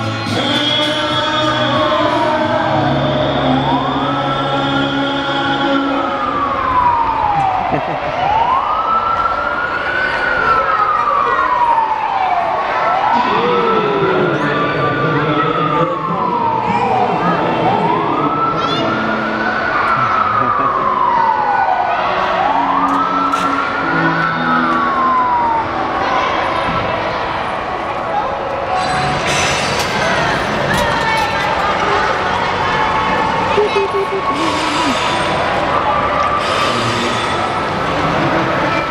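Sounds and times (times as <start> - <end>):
electronic wail siren: 0.2 - 26.2, 31.2 - 38.9.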